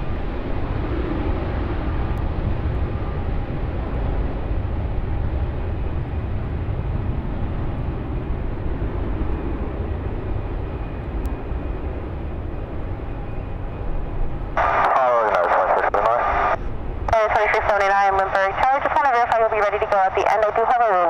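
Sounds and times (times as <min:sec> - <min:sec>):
jet engines rumbling at takeoff: 0:00.0 - 0:21.0
tinny radio transmission: 0:14.6 - 0:21.0.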